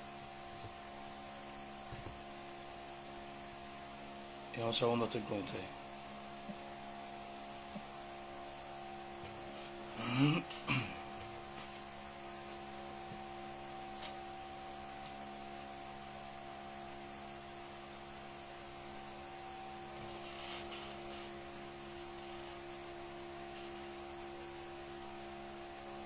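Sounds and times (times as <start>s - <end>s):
electrical hum with faint hiss: 0.0s - 26.0s.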